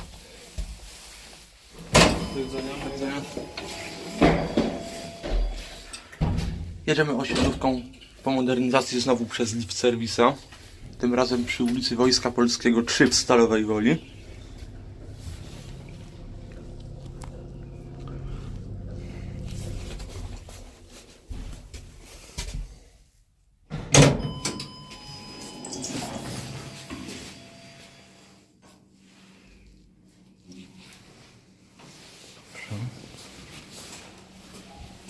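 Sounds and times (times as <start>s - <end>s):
thin whining of lift doors: 1.7s - 6.7s, 13.1s - 20.9s, 23.8s - 28.4s
lift motor hum: 13.0s - 21.0s.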